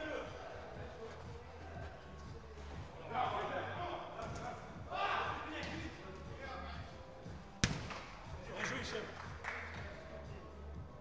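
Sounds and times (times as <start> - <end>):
football being kicked: 7.6 - 8.1.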